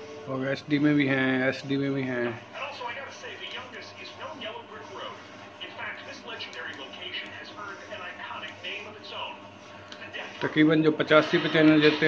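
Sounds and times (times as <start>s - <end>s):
background music: 0.0s - 1.4s
voice talking on television: 0.3s - 12.0s.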